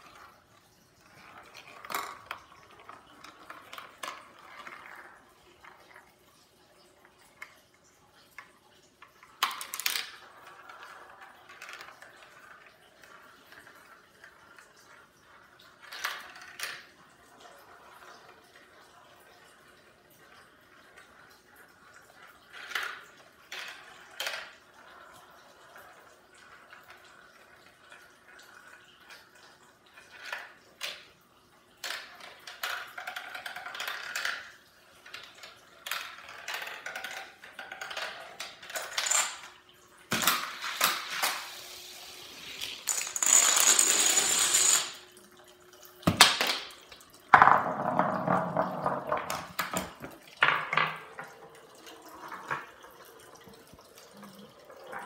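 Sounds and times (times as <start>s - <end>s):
marbles rolling through plastic tubes: 0.0s - 55.0s
marbles clicking on plastic: 1.0s - 6.1s, 8.4s - 17.0s, 31.8s - 45.2s, 46.0s - 52.9s.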